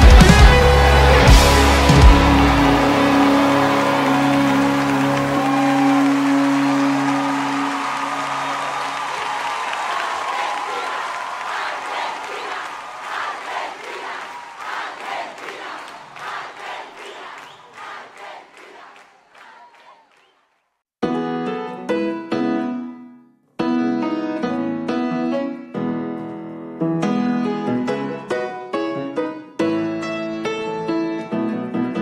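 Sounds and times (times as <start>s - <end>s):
audience applause and cheering: 0.0s - 20.5s.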